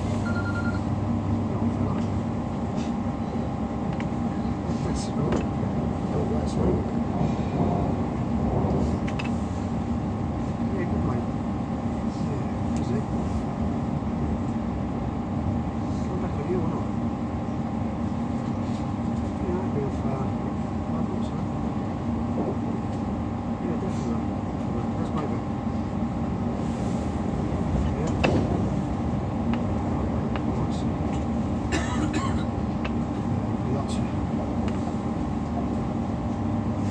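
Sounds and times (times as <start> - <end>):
train wheels rumbling on rail: 1.4 - 17.2, 18.0 - 36.9.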